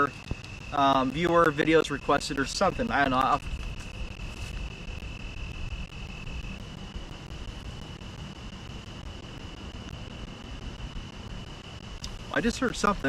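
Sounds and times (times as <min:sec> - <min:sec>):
steady high-pitched trill: 0:00.0 - 0:13.0
wind buffeting microphone: 0:00.0 - 0:13.0.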